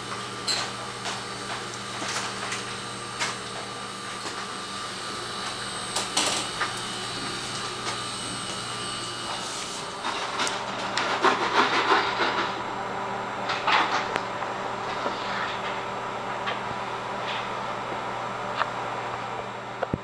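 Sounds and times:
laboratory equipment humming: 0.0 - 20.0
clattering and handling noise: 0.4 - 12.6, 13.4 - 16.6.

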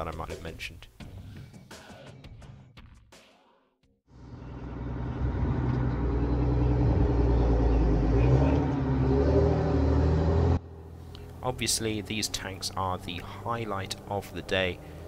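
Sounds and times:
tank engine droning: 4.1 - 15.0.

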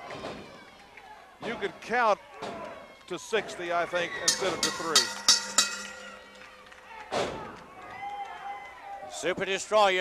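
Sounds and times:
bell ringing: 4.3 - 6.7.

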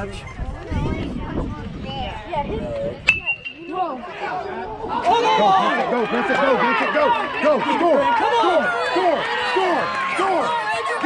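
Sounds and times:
spectators calling out: 3.1 - 11.0.

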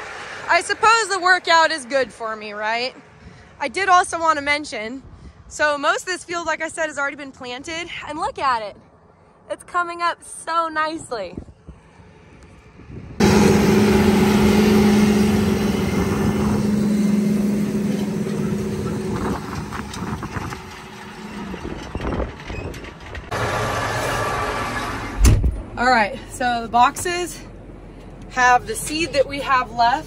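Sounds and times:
tractor engine drone: 0.0 - 3.2, 12.0 - 30.0
tillage clatter: 13.2 - 24.9
short low thump: 25.2 - 25.7.

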